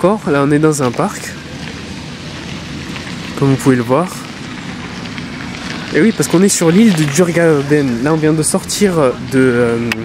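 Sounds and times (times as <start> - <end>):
crackly outdoor noise: 0.0 - 10.0.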